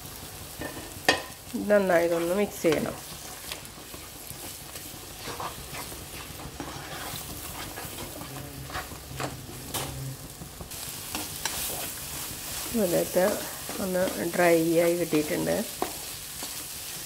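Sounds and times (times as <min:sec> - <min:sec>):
egg sizzling in frying pan: 0:00.0 - 0:17.0
spatula scraping pan: 0:01.9 - 0:10.3, 0:10.9 - 0:17.0.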